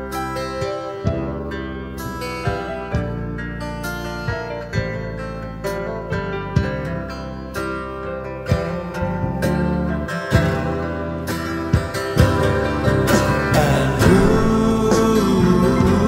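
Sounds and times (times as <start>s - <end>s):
band ballad sustained chords: 0.0s - 16.0s
struck drum hits: 14.0s - 16.0s.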